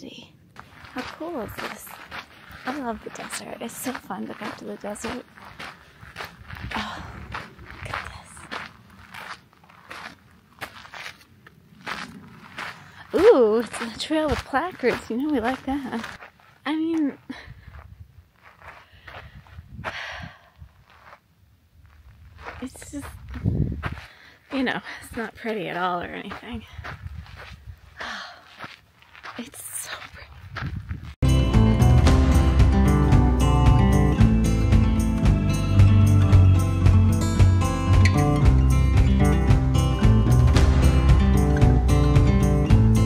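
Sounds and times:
footsteps on gravelly sand: 0.5 - 31.2
wind rumble on microphone: 6.0 - 8.6, 17.3 - 18.4, 19.0 - 21.0, 21.8 - 24.1, 26.4 - 28.0, 30.1 - 31.2.

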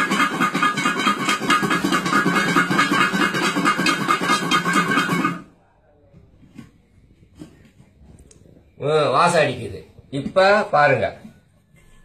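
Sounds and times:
garlic rattling in shaken bowls: 0.0 - 5.4.

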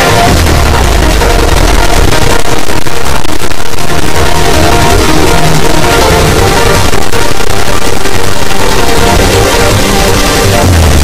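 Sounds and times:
hardcore techno with heavy bass: 0.0 - 11.0.

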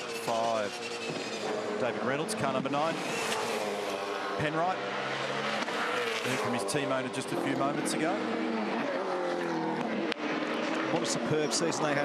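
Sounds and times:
racing engine at high revs: 0.0 - 12.0.

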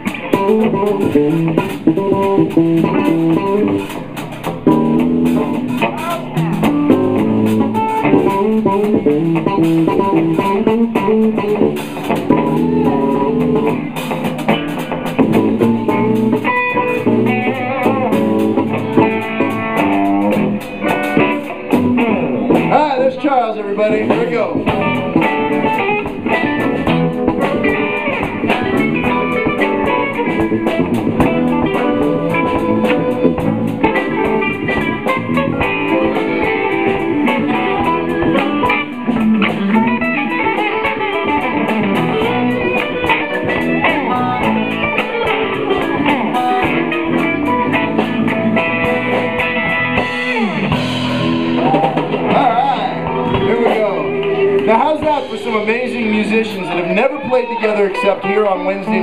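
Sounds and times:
bass guitar: 0.0 - 59.0
drum kit: 0.0 - 59.0
electric guitars: 0.0 - 59.0.

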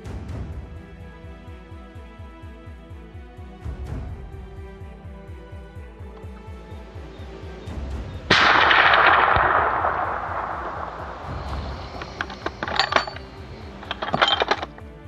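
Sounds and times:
background music: 0.0 - 15.0
rifle shot with echo: 8.3 - 12.2.

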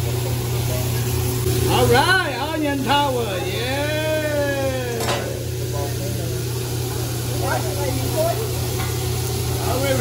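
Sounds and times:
food sizzling on a griddle: 0.0 - 10.0
person cheering: 3.4 - 5.4.

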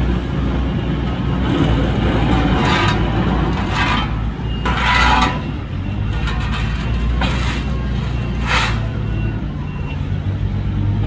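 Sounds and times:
garbage truck running: 0.0 - 11.0
wheel loader diesel engine rumble: 0.0 - 11.0.

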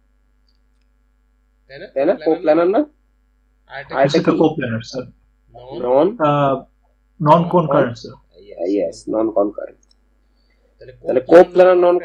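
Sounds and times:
faint low hum: 0.0 - 12.0
person speaking: 1.7 - 2.9, 3.7 - 9.8, 10.8 - 12.0.

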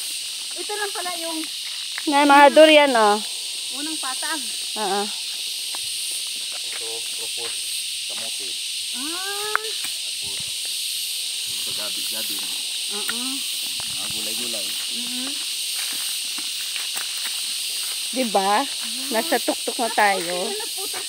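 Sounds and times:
insect chorus hiss: 0.0 - 21.0
quiet voices talking: 18.2 - 21.0.

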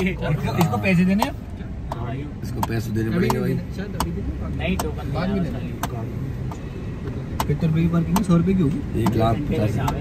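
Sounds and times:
people talking: 0.0 - 6.1
car driving rumble: 0.0 - 10.0
sharp clicks: 0.5 - 5.0, 7.3 - 10.0.

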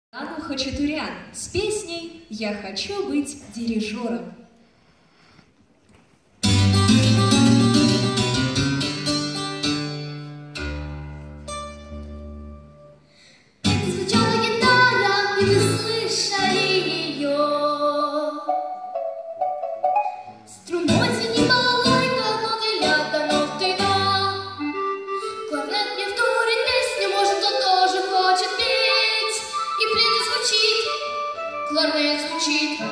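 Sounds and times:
instrumental backing track: 6.4 - 17.2, 18.4 - 32.9.

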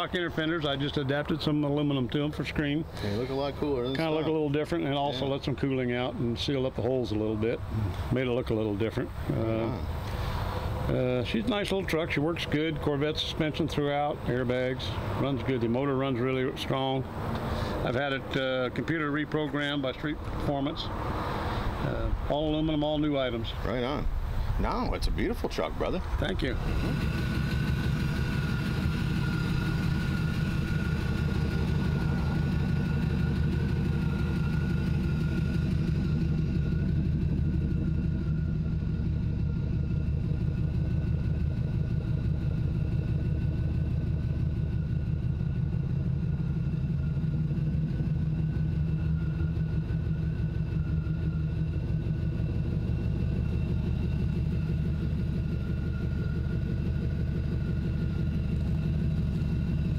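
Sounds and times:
engine idling: 0.0 - 59.9
thin steady whine: 17.8 - 59.9.

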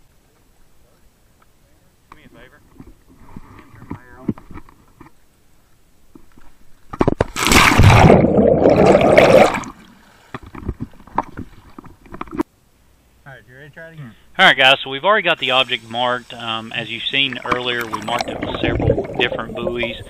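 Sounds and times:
loud splash: 7.4 - 9.8
underwater rushing bubbling: 7.4 - 9.8, 17.3 - 20.0.

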